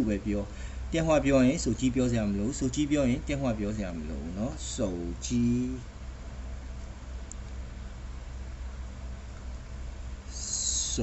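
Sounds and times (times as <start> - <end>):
person speaking: 0.0 - 5.9
low electrical hum: 0.0 - 11.0.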